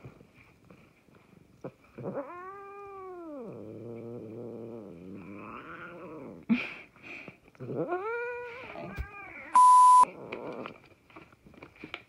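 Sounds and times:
loud electronic beep: 9.6s - 10.0s.

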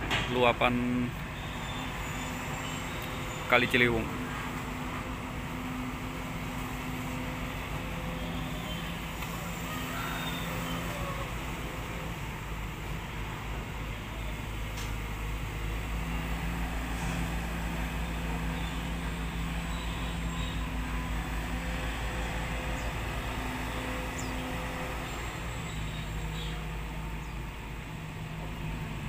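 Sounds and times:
excavator diesel engine running: 0.0s - 29.0s.

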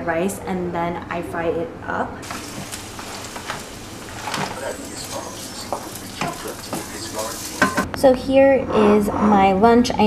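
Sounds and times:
rice sizzling in a wok: 2.2s - 7.9s
spatula scraping a pan: 2.2s - 7.9s.

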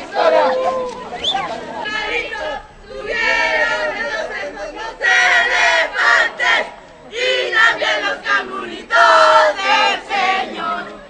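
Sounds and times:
crowd chanting and shouting: 0.0s - 11.0s.

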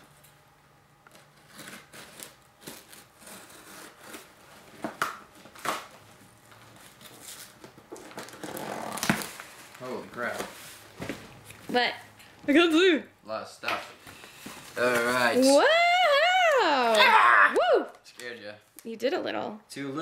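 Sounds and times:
packing tape and paper tearing: 1.0s - 10.6s, 14.2s - 17.2s.

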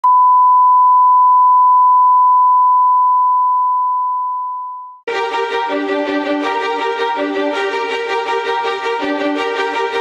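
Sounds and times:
steady reference tone beep: 0.0s - 5.0s.

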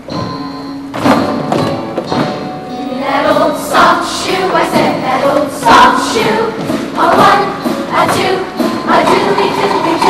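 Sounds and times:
youth choir singing: 2.8s - 10.0s.

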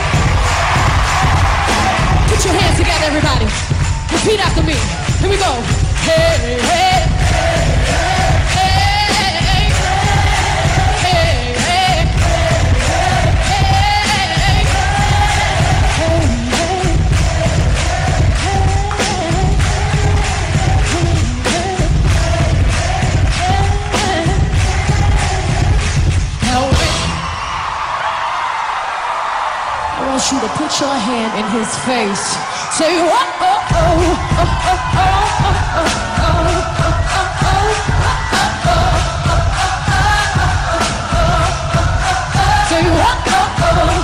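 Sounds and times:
woman singing pop song: 0.0s - 27.2s, 30.0s - 44.0s
backing track with heavy beat: 0.0s - 28.0s, 33.6s - 44.0s.

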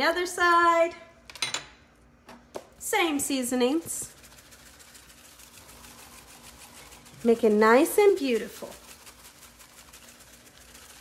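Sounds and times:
plastic shaker jar rattling: 3.7s - 11.0s.

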